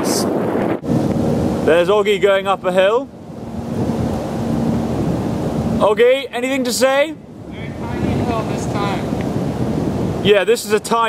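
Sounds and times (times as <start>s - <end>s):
wind rushing across microphone: 0.0s - 11.0s.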